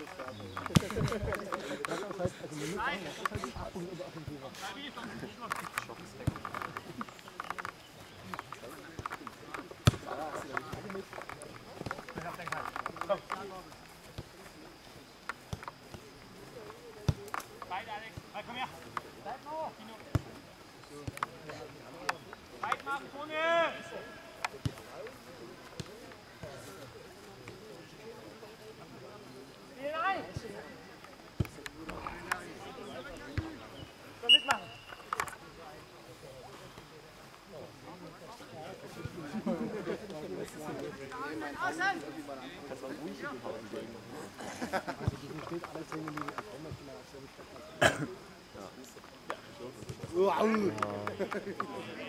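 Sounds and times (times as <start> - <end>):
referee whistle blast: 34.2 - 35.0.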